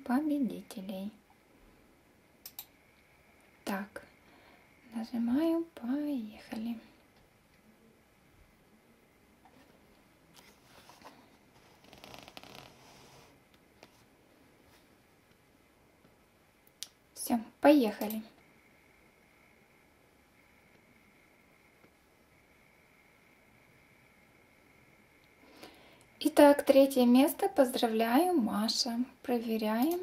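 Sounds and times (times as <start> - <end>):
computer mouse clicks: 2.4 - 2.8, 18.0 - 18.2.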